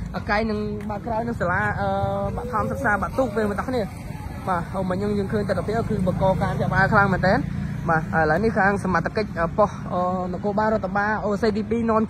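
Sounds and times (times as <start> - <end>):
person talking quickly: 0.0 - 11.8.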